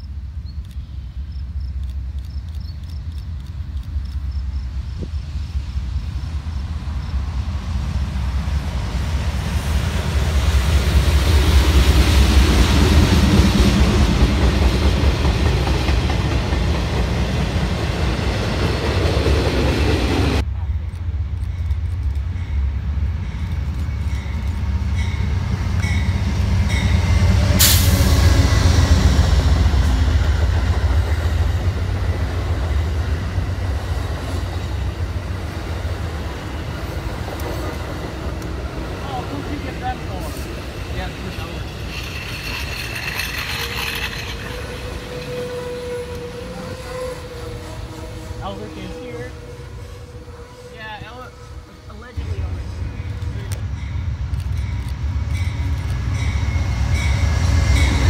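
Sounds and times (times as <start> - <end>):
diesel freight locomotive passing: 0.0 - 58.0
passenger train rolling by: 0.0 - 58.0.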